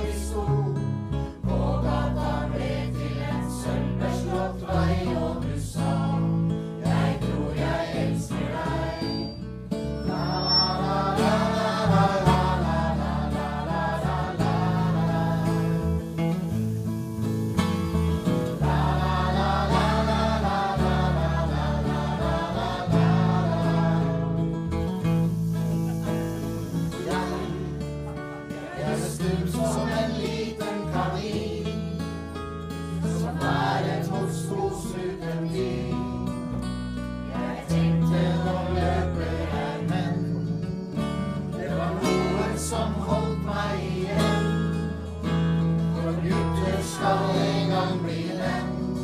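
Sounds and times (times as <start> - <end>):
acoustic guitars strumming: 0.0 - 49.0
group singing together: 0.0 - 49.0.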